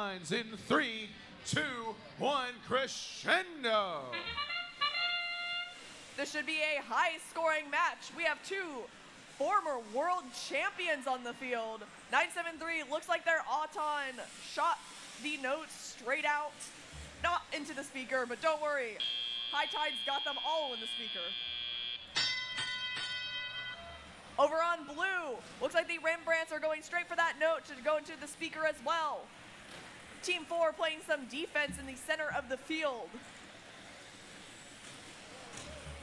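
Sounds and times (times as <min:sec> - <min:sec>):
bell strikes: 0:22.1 - 0:24.0.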